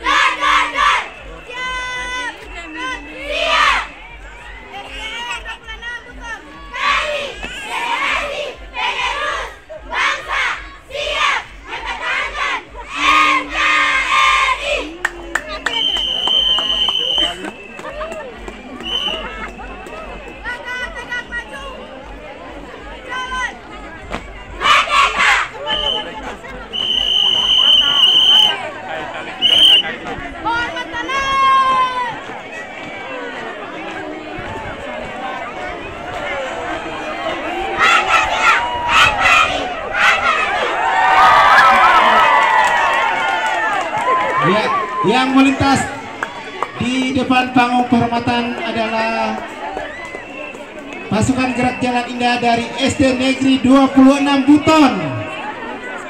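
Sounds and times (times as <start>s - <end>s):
crowd of onlookers: 0.0s - 56.0s
girls chanting in unison: 6.7s - 14.9s
shrill whistle blasts: 15.6s - 17.9s, 18.8s - 19.6s, 25.7s - 26.1s, 26.7s - 28.6s, 29.4s - 29.9s.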